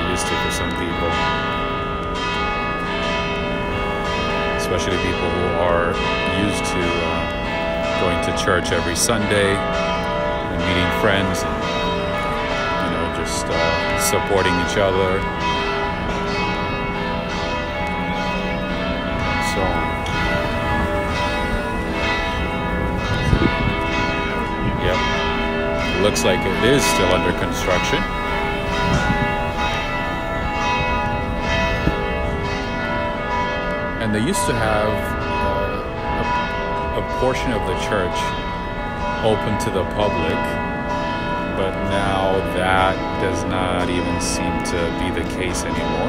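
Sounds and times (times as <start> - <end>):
church bells ringing: 0.0 - 46.0.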